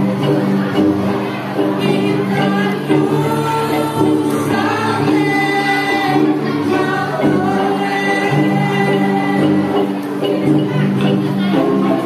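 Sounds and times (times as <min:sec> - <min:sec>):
wooden xylophone ensemble: 0:00.0 - 0:12.0
girls singing into microphones: 0:01.6 - 0:12.0.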